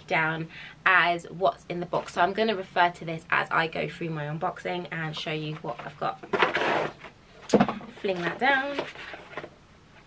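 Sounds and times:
paper rustling: 8.0s - 9.5s.

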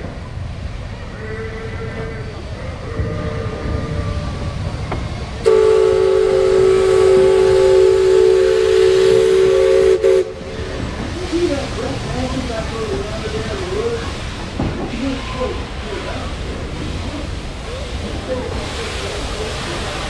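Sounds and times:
steam whistle chord: 5.4s - 10.4s.

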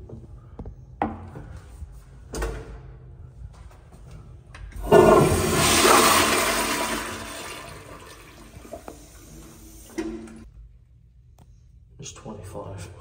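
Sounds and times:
toilet flushing: 4.8s - 10.5s.

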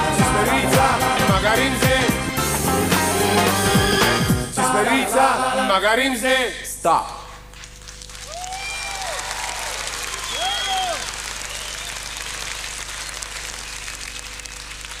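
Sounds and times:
audience applauding: 7.8s - 15.0s.

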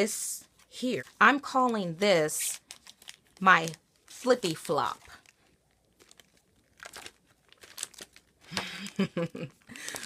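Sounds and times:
plastic pages crinkling: 0.4s - 10.0s.

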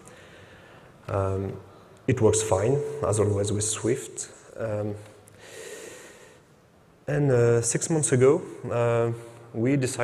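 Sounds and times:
man breathing in: 5.4s - 6.4s.

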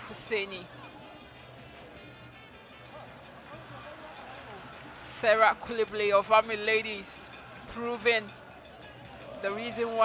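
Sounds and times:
faint music: 0.0s - 10.0s.

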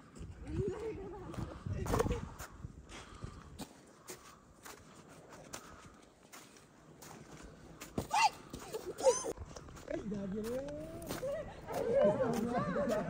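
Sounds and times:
people talking: 0.5s - 2.4s, 8.2s - 13.0s
footsteps on slushy snow: 2.3s - 8.9s, 9.5s - 13.0s.

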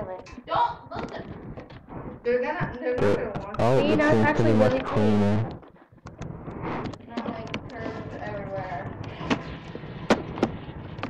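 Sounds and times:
low steady hum: 0.0s - 11.0s
faint muffled voices: 2.2s - 5.6s.

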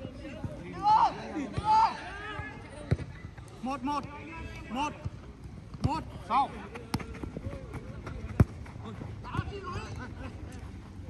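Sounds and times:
players shouting: 0.6s - 2.9s.

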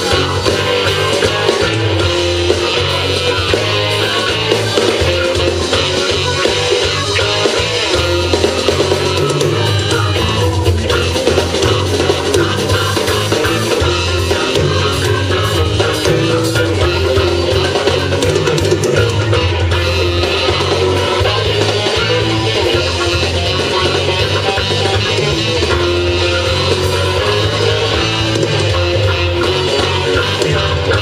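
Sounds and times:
drum kit: 0.0s - 31.0s
electric guitar: 0.0s - 31.0s
live band playing loud: 0.0s - 31.0s.

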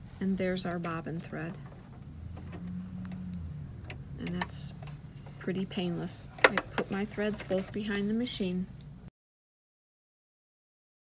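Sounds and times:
low steady hum: 0.0s - 9.1s.

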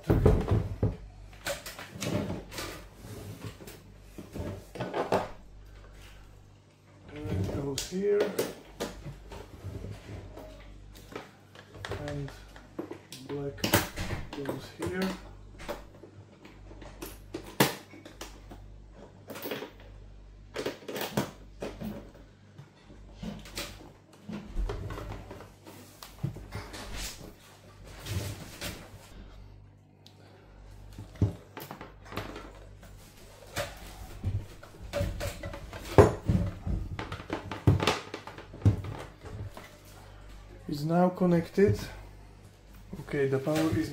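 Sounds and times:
low steady hum: 0.0s - 43.9s.

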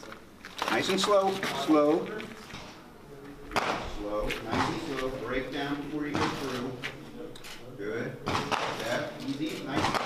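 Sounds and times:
man talking: 0.6s - 2.3s, 3.8s - 10.0s.

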